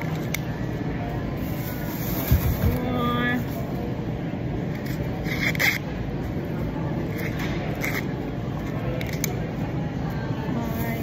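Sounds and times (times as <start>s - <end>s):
supermarket background rumble: 0.0s - 11.0s.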